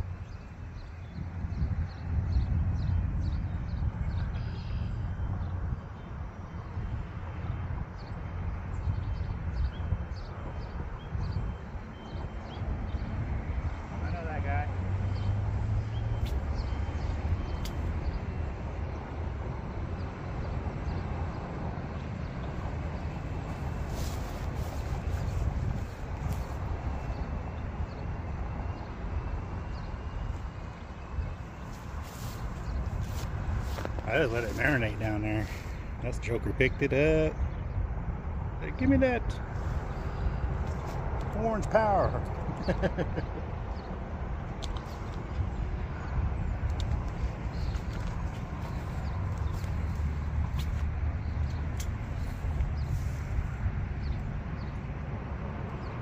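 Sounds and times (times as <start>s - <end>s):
wind buffeting microphone: 0.0s - 56.0s.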